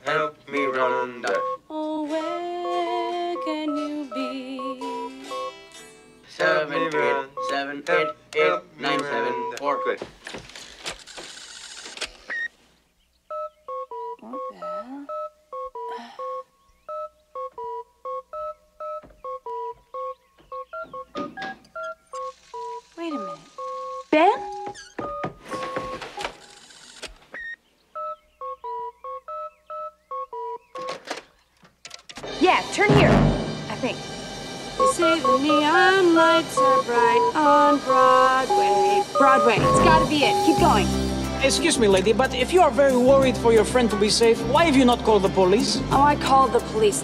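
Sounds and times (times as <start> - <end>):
telephone keypad touch-tones: 1.2 - 1.7, 3.4 - 5.6, 6.8 - 10.0, 13.3 - 26.3, 27.4 - 31.0, 36.6 - 40.8
tape hiss: 32.4 - 47.0.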